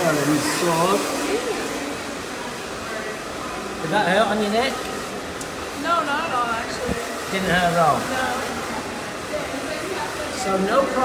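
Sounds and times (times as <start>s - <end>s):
hair dryer blowing: 0.0s - 11.0s.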